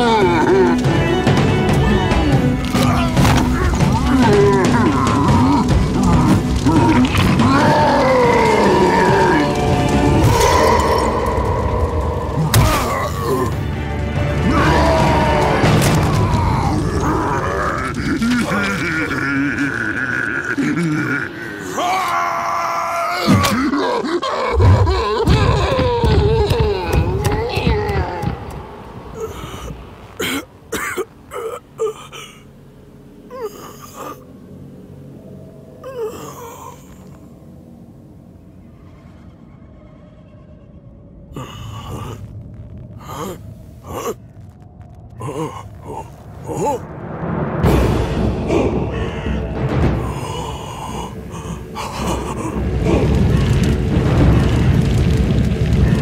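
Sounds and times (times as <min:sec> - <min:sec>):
music: 0:00.0 - 0:56.0.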